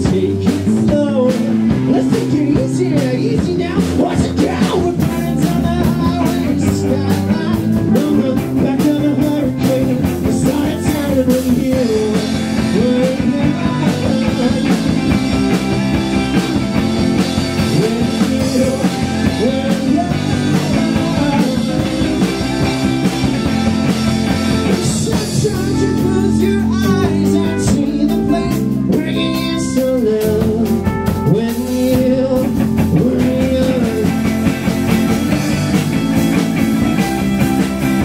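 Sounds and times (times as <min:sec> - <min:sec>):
drum kit: 0:00.0 - 0:38.0
electric bass: 0:00.0 - 0:38.0
electric guitars: 0:00.0 - 0:38.0.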